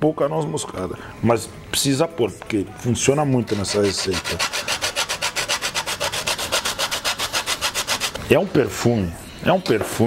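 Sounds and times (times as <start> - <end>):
nutmeg rasping on metal grater: 3.4 - 8.2.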